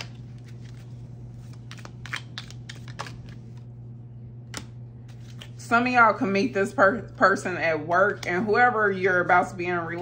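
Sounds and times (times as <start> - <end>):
cards being shuffled: 0.0 - 3.7, 4.5 - 5.6
low steady hum: 0.0 - 10.0.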